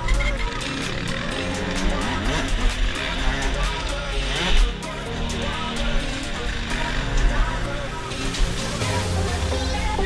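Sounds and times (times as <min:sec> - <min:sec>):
dirt bike engine revving: 0:00.0 - 0:10.0
music playing: 0:00.0 - 0:10.0.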